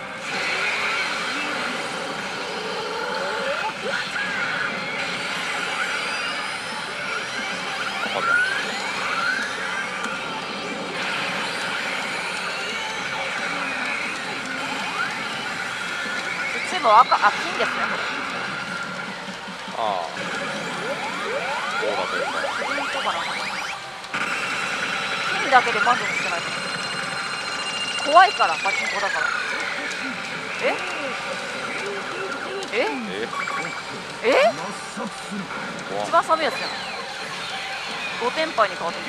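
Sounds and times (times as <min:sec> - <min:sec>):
din of a pachinko parlour: 0:00.0 - 0:39.0
pachinko machine sound effects: 0:03.2 - 0:39.0
short rising and falling tones: 0:19.8 - 0:23.9
character voice lines: 0:21.2 - 0:23.6, 0:34.2 - 0:34.9.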